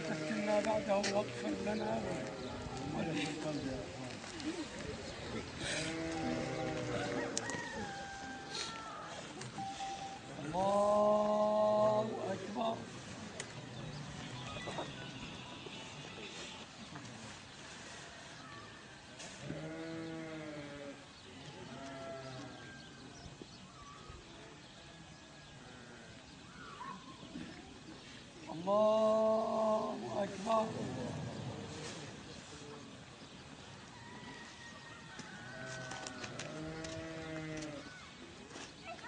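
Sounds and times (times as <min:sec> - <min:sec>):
quiet outdoor background: 0:00.0 - 0:39.0
long low animal call: 0:05.5 - 0:09.2
livestock bleating: 0:05.6 - 0:07.4, 0:19.5 - 0:21.0, 0:21.7 - 0:22.6.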